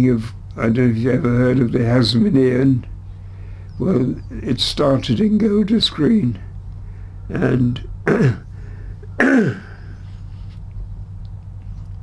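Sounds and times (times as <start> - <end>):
man coughing: 8.0 - 10.0.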